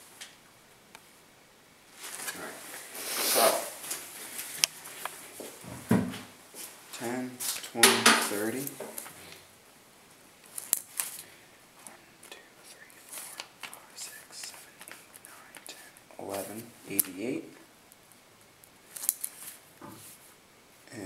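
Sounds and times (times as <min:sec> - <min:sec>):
man's voice: 0:07.0 - 0:08.8, 0:16.2 - 0:17.6.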